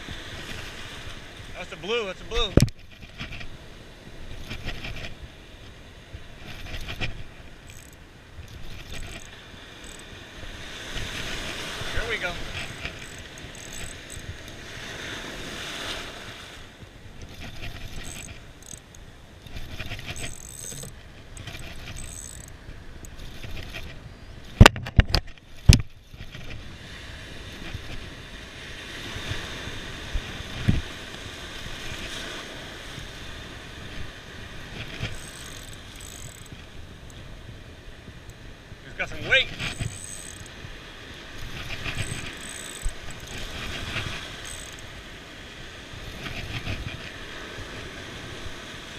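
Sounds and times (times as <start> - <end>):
surf wash: 0.0 - 24.7, 25.4 - 48.9
wind: 0.0 - 48.9
fishing reel cranking: 6.5 - 10.1, 11.0 - 14.6, 17.2 - 24.0, 34.7 - 37.2, 39.3 - 40.6, 41.4 - 44.9.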